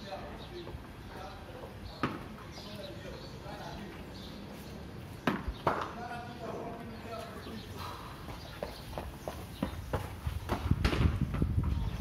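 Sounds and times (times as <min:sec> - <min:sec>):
footsteps on tiled floor: 0:07.2 - 0:10.7.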